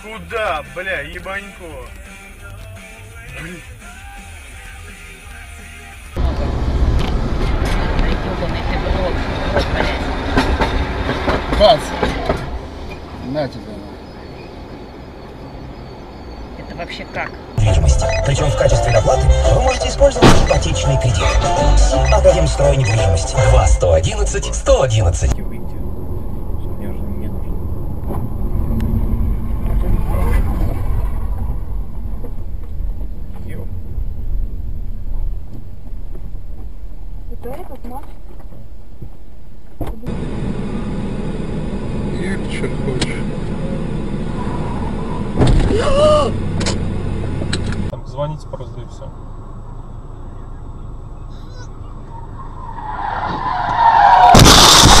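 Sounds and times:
car engine and tyre rumble: 0.0 - 3.8, 6.0 - 55.0
car collision crash: 20.0 - 20.9, 45.2 - 46.8, 53.1 - 55.0.

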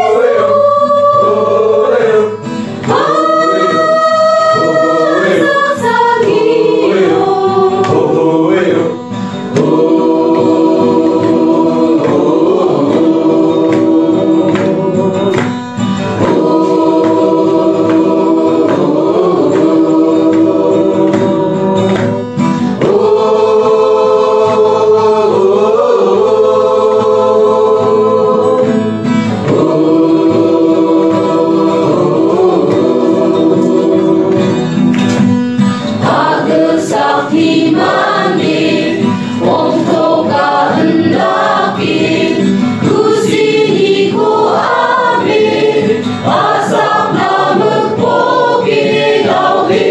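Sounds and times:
choir singing: 0.0 - 34.9, 35.9 - 49.9.

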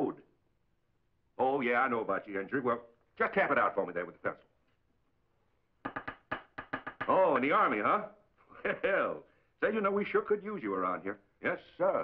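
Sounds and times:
pencil tapping on desk: 5.8 - 7.2.

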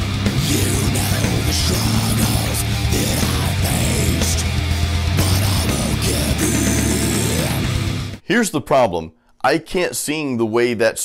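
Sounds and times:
distorted rhythm guitars: 0.0 - 8.2
man screaming vocals: 0.2 - 8.0.

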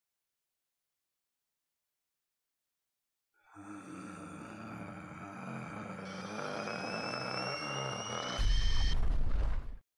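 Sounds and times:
synthesized drone: 3.8 - 9.0
rising whine: 6.0 - 9.0
deep boom: 8.4 - 9.8.

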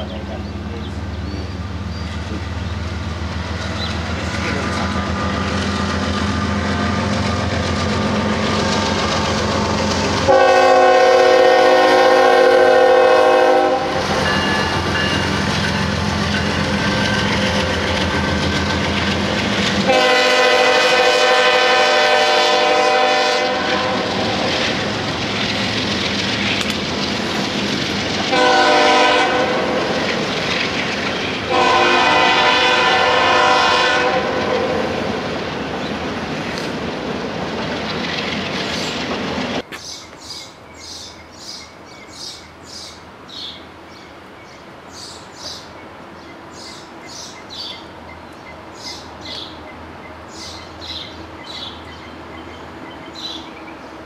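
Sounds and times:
locomotive engine rumble: 0.0 - 39.7
train wheels clattering on rails: 0.8 - 11.0, 13.9 - 21.2, 23.9 - 33.3, 35.1 - 40.0
locomotive air horn blasts: 10.2 - 14.8, 19.9 - 24.4, 28.3 - 29.8, 31.5 - 35.0.

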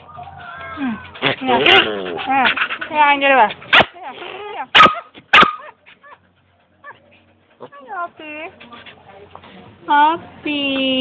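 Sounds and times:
dog barking: 4.7 - 5.8.

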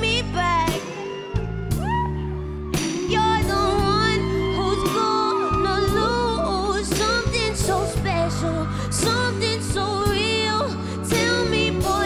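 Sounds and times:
woman singing r and b ballad: 0.0 - 1.3, 2.8 - 12.0
bass and chord accompaniment: 0.0 - 12.0.

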